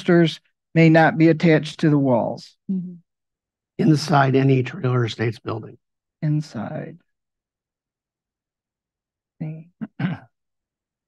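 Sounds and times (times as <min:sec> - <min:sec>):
person clearing throat: 0:09.8 - 0:10.4.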